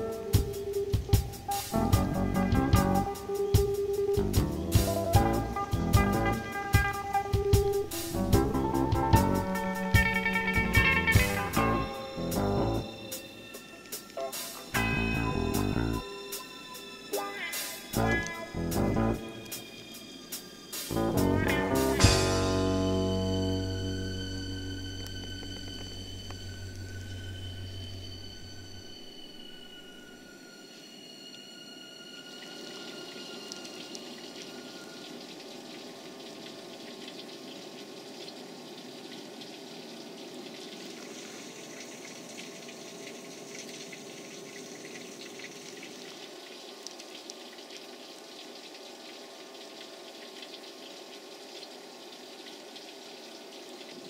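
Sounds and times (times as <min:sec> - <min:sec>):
water hissing with crackles: 0:00.0 - 0:54.0
plucked guitar music: 0:07.7 - 0:12.8, 0:17.2 - 0:19.3, 0:21.0 - 0:26.8.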